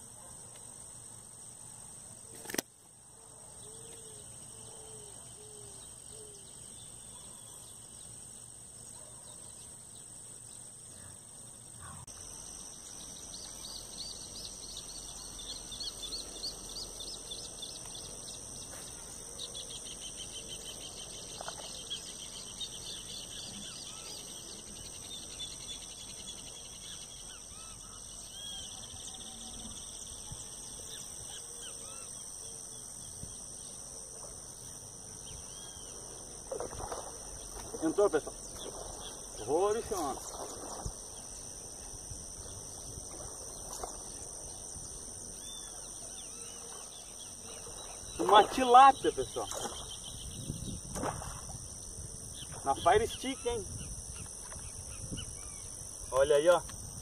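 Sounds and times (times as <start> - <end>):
insect buzzing: 0.0 - 57.0
bird chirping: 3.6 - 33.7.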